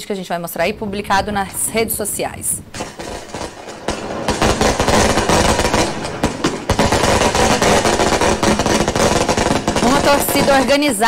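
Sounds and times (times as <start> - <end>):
fireworks bangs and crackles: 0.1 - 11.0.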